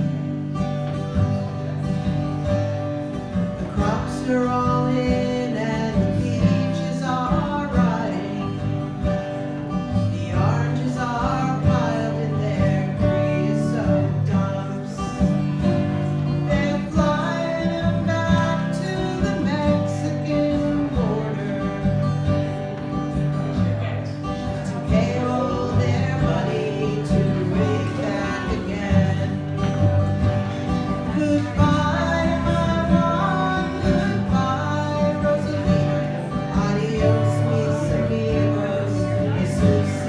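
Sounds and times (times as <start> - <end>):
acoustic guitar strumming: 0.0 - 40.0.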